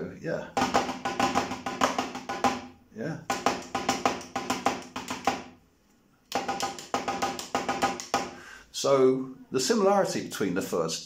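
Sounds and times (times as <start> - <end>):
drumsticks on electronic drum pad: 6.3 - 8.4.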